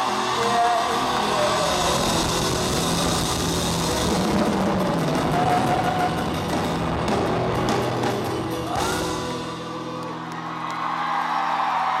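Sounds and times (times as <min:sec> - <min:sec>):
crowd cheering and whooping: 0:00.0 - 0:03.2, 0:08.5 - 0:12.0.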